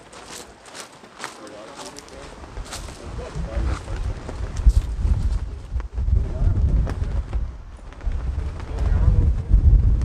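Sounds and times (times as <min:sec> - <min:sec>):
faint voices: 0:00.0 - 0:04.7
wind buffeting microphone: 0:02.2 - 0:10.0.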